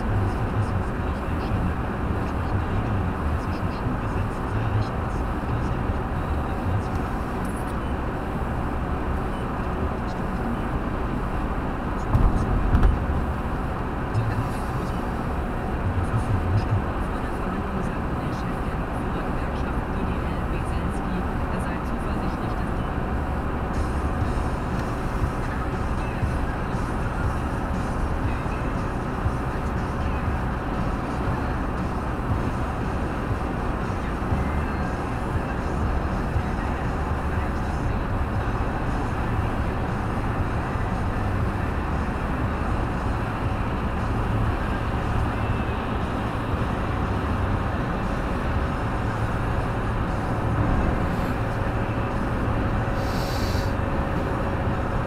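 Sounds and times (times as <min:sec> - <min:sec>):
car engine hum: 0:00.0 - 0:55.0
road and tyre noise: 0:00.0 - 0:55.0
low thumps: 0:12.0 - 0:13.3.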